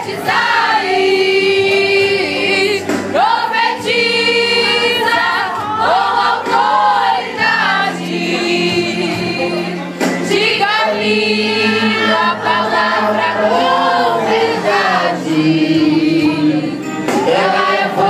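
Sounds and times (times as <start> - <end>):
women's choir singing: 0.0 - 18.0.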